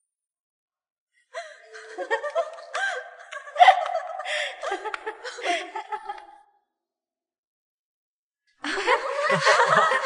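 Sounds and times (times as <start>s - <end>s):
young people laughing and giggling: 1.4s - 6.6s, 8.6s - 10.0s.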